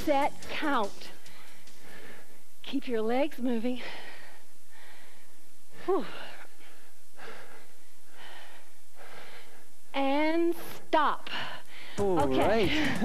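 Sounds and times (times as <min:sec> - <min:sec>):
heavy quick breathing: 0:01.2 - 0:02.5.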